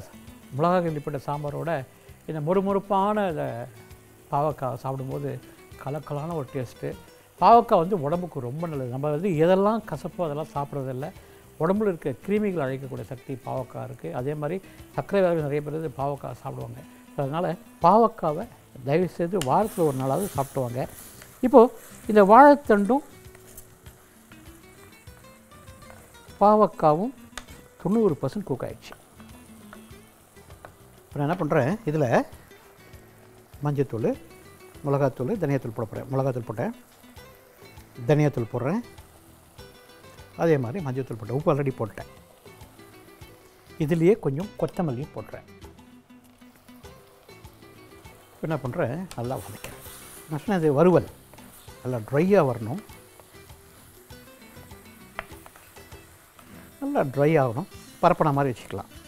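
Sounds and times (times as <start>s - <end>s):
quiet background music: 0.0s - 59.0s
vegetables sizzling in pot: 0.0s - 59.0s
spatula scraping a pan: 19.5s - 22.2s, 49.3s - 50.3s.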